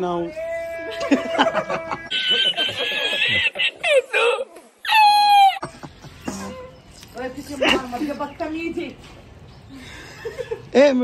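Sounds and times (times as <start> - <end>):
woman laughing: 0.9 - 4.4.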